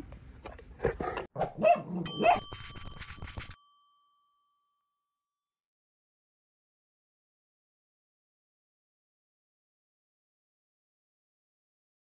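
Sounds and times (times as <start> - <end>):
dog barking: 1.4 - 2.5
bell ding: 2.0 - 5.2.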